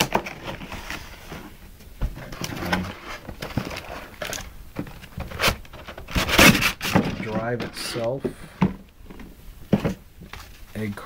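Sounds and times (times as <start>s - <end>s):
cardboard and plastic bag rustling: 0.0s - 11.0s.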